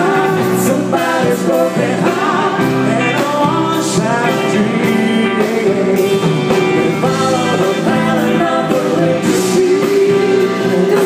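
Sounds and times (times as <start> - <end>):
drums: 0.0 - 11.0
electric guitars: 0.0 - 11.0
keyboards: 0.0 - 11.0
woman singing: 0.0 - 11.0.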